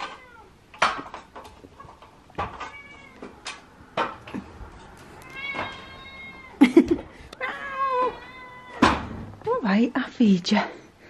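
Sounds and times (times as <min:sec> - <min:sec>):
cat meowing: 0:00.0 - 0:00.6, 0:02.5 - 0:03.4, 0:05.1 - 0:06.6, 0:07.4 - 0:08.9.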